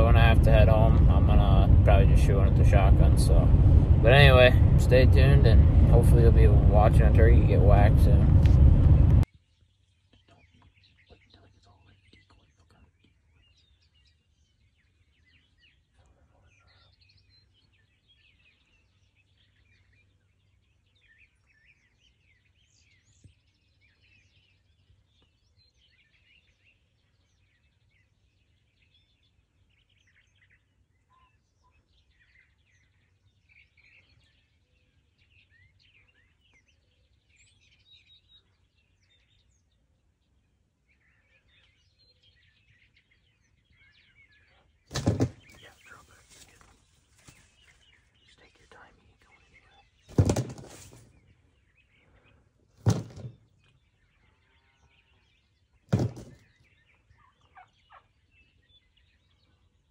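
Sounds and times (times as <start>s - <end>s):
songbirds chirping: 0.0s - 59.9s
small knock: 44.9s - 45.6s, 55.9s - 56.4s.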